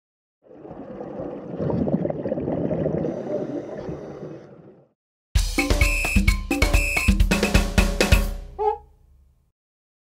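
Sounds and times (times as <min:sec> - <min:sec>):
underwater water noise: 0:00.4 - 0:04.9.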